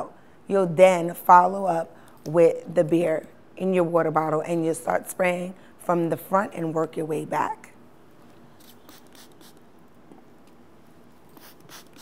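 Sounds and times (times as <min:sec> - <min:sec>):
spray bottle hissing squirts: 0:08.6 - 0:09.6, 0:11.3 - 0:12.0.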